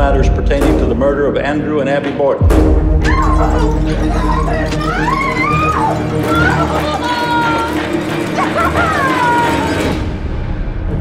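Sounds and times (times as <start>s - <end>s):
low dark film score: 0.0s - 11.0s
woman wailing: 3.0s - 9.9s.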